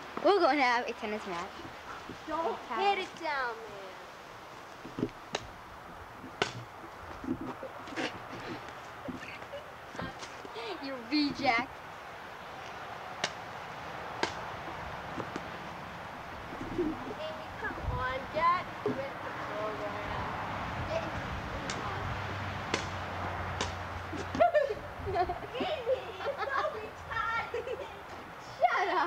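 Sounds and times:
children's voices and calls: 0:00.0 - 0:04.2, 0:16.7 - 0:22.4, 0:25.5 - 0:29.0
tennis racket hitting ball: 0:06.2 - 0:08.2, 0:13.2 - 0:13.4, 0:14.1 - 0:15.6, 0:22.6 - 0:24.4.

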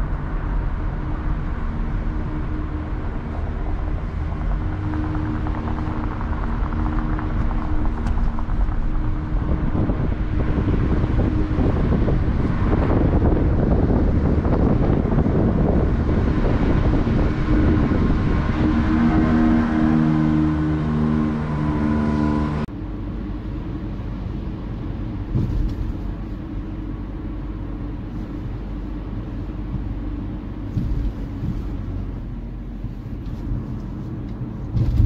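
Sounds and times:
steady tones shifting in pitch: 0:00.0 - 0:14.5, 0:15.8 - 0:23.3
vehicle road and engine noise: 0:00.0 - 0:35.0.

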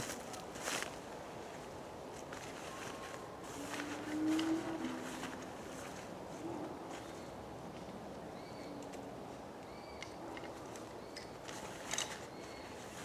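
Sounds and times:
footsteps crunching on dry leaves: 0:00.0 - 0:07.3
faint rustles: 0:00.0 - 0:08.0, 0:10.4 - 0:13.0.

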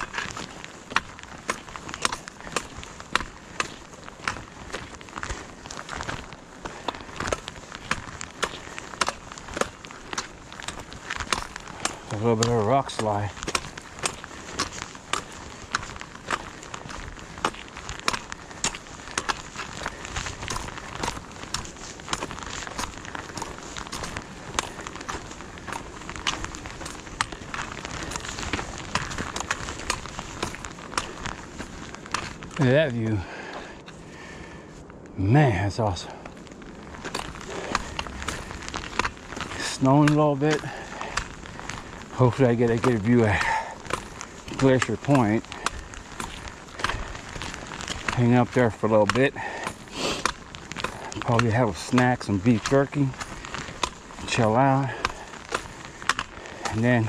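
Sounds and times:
footsteps on gravel trail: 0:00.0 - 0:57.0
trekking poles clicking on gravel: 0:00.0 - 0:57.0.

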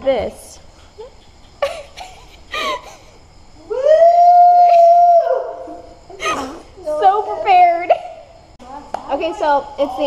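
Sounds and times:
high howl-like voice call: 0:03.6 - 0:05.9.

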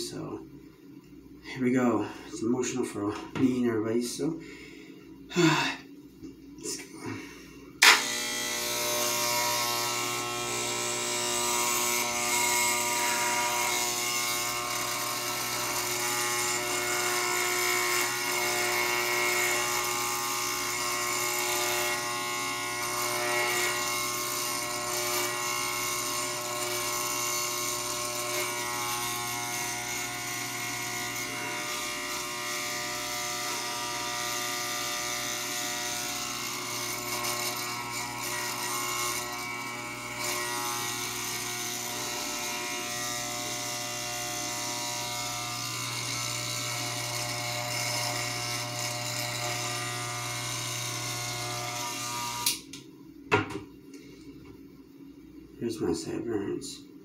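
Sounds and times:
electric hair clippers buzzing: 0:07.8 - 0:53.5.

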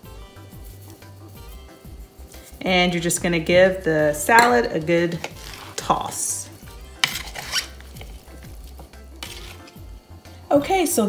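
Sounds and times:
quiet background music: 0:00.0 - 0:11.0
spoon scraping pasta in bowl: 0:04.4 - 0:06.3, 0:07.0 - 0:09.8.

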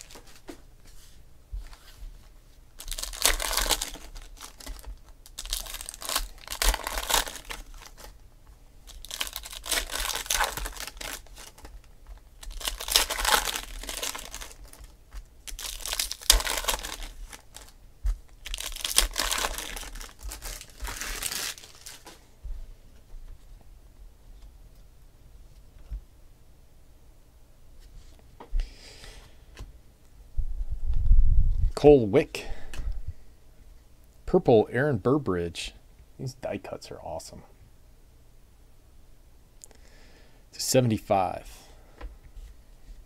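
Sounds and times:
foil wrappers tearing and crinkling: 0:00.0 - 0:00.4, 0:02.8 - 0:08.2, 0:08.8 - 0:22.2.

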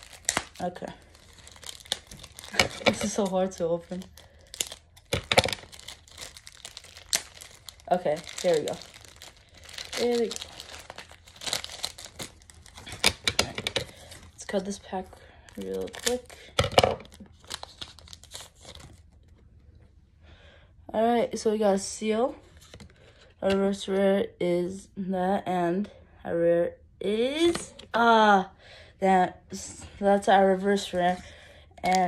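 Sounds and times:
foil wrapper crinkling and tearing: 0:00.0 - 0:14.8, 0:15.5 - 0:19.2.

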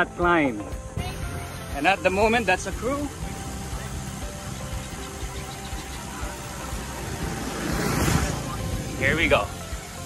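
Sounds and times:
faint background music: 0:00.0 - 0:10.0
wind and road noise: 0:00.8 - 0:10.0.

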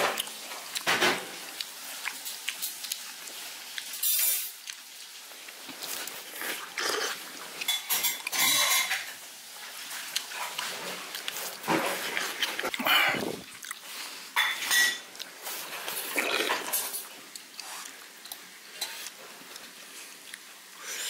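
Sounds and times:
utensils clinking on metal bowl: 0:03.9 - 0:04.6, 0:07.6 - 0:09.1, 0:14.4 - 0:15.1, 0:15.7 - 0:17.1
person slurping and chewing soup: 0:04.6 - 0:08.9, 0:09.7 - 0:21.0.

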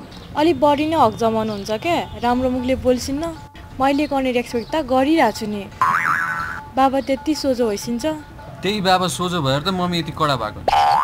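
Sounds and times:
comic boing sound effect: 0:05.8 - 0:06.7, 0:10.7 - 0:11.0.

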